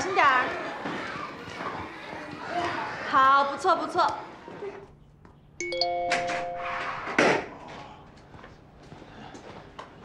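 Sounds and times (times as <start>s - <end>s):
phone message alert chime: 5.6s - 7.0s.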